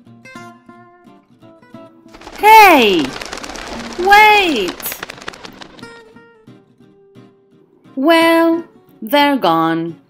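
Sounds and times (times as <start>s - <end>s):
rush of noise: 2.2s - 5.9s.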